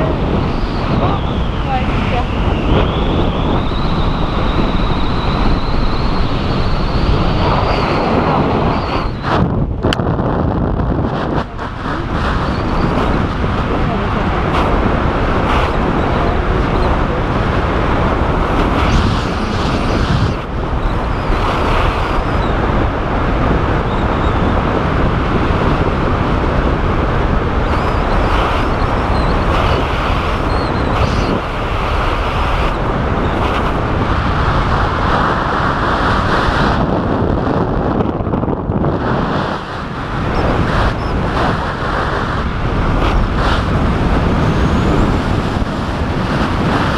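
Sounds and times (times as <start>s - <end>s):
wind rushing over microphone: 0.0s - 46.9s.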